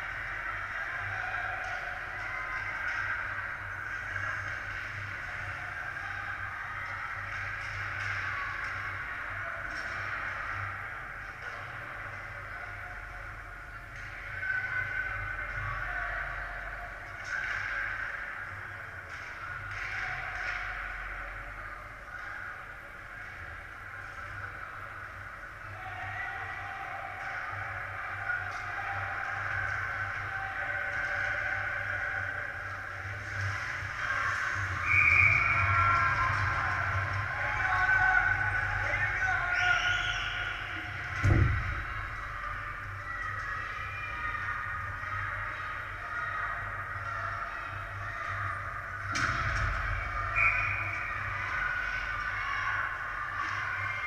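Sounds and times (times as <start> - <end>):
voices echoing in arena: 0.0 - 54.0
referee's whistle: 34.8 - 35.7, 39.5 - 40.7, 50.3 - 51.1.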